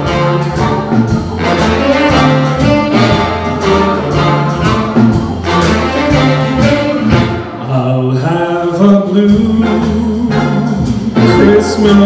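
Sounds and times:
sharp drum accents: 0.0 - 7.6
big band playing: 0.0 - 12.0.

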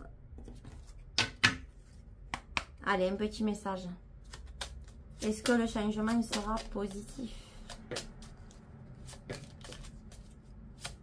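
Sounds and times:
cards being shuffled: 4.2 - 11.0.

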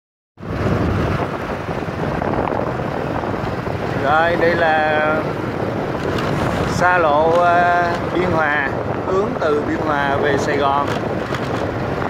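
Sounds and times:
vehicle engine and road rumble: 0.4 - 12.0
wind rushing over microphone: 0.4 - 12.0.

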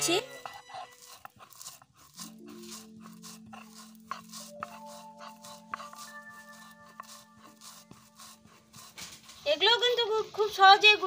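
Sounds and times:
stone scraping on stone: 0.0 - 9.6.

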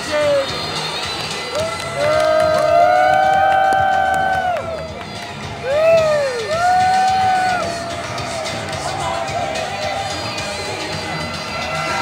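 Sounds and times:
crowd whooping: 1.5 - 5.0, 5.6 - 12.0.

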